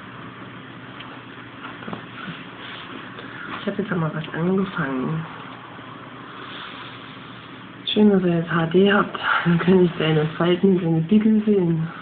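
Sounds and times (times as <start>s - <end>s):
steady recording hiss: 0.0s - 12.0s.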